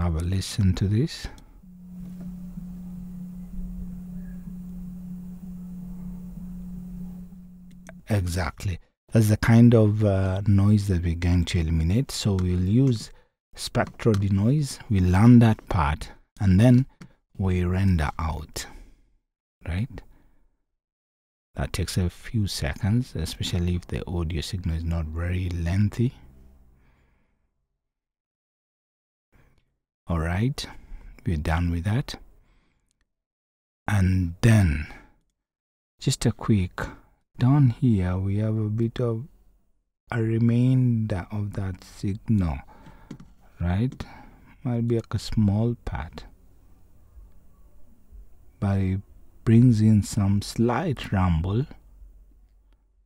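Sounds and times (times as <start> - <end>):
air conditioner hum: 0.8 - 8.8.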